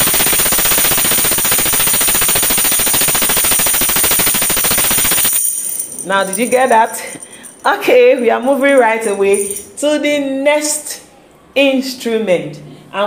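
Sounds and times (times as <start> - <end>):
tambourine jingles rattling: 0.0 - 7.7, 8.8 - 9.8.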